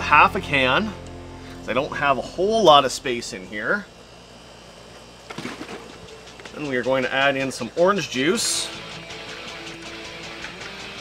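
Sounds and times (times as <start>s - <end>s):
faint low hum: 0.0s - 8.2s.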